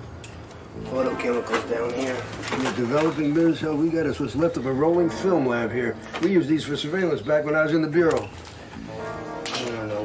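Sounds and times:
man speaking: 0:00.8 - 0:08.3.

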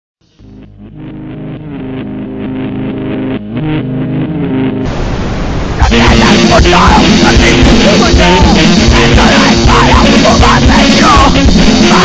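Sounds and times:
picked guitar notes: 0:00.3 - 0:05.0, 0:05.8 - 0:12.0.

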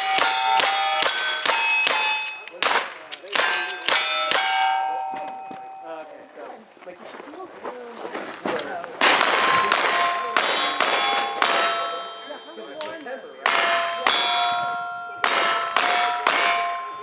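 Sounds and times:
steel plate ringing: 0:00.0 - 0:06.4, 0:09.0 - 0:17.0.

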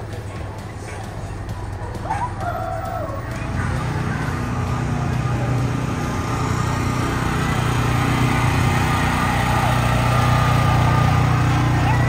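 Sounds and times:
vehicle engine humming: 0:00.0 - 0:12.0.

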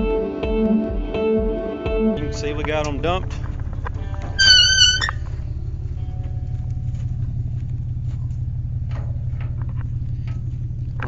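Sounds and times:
truck engine idling: 0:02.2 - 0:11.0
short high squeak: 0:04.3 - 0:05.3.

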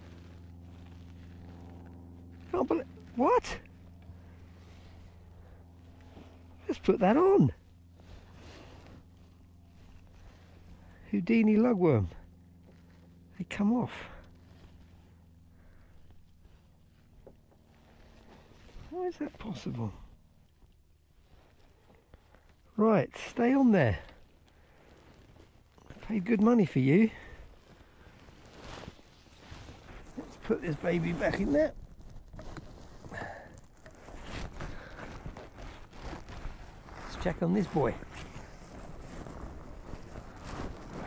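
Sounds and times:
low steady hum: 0:00.0 - 0:41.0
low steady rumble: 0:00.0 - 0:41.0.

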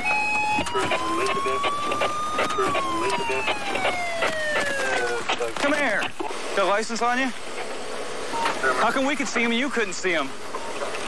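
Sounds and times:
police siren wailing: 0:00.0 - 0:05.5, 0:08.4 - 0:11.0
engine and road noise: 0:00.0 - 0:11.0.

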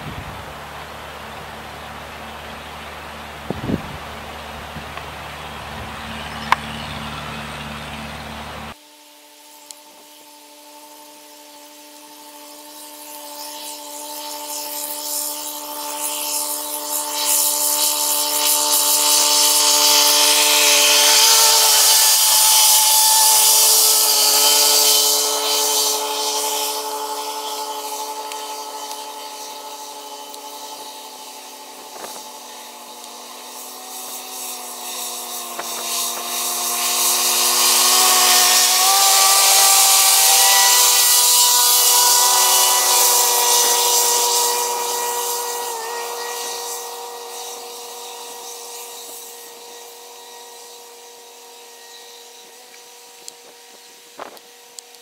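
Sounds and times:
tractor mowers whirring: 0:00.0 - 0:08.8, 0:09.6 - 0:55.0.

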